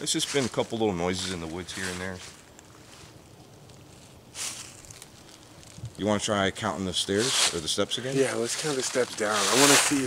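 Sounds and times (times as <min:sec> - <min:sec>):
soft rustle: 0:00.0 - 0:06.2, 0:06.9 - 0:10.0.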